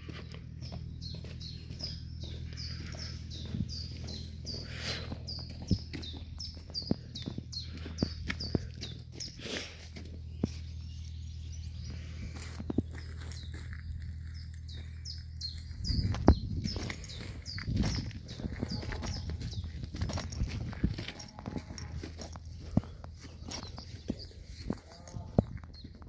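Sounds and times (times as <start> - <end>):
footsteps: 0.0 - 10.9, 11.8 - 26.0
low steady hum: 0.0 - 26.0
small birds chirping: 0.0 - 26.0.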